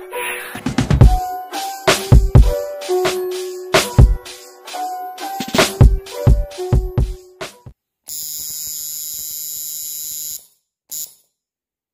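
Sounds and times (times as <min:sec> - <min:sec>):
background music beats: 0:00.0 - 0:07.7.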